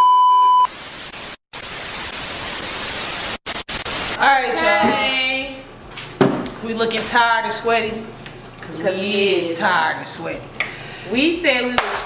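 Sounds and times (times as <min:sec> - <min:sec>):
tv static hiss: 0:00.7 - 0:04.4.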